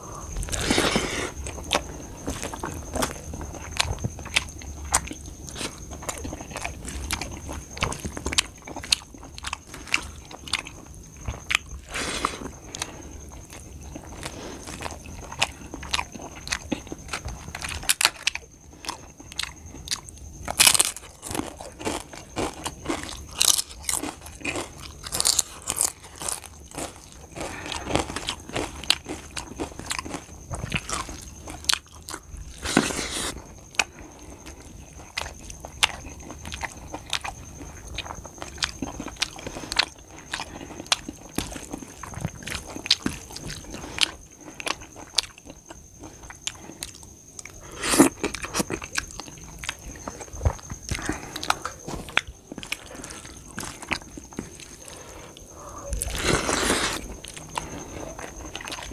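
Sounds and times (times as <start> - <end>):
crunching and chewing papad: 0.0 - 58.9.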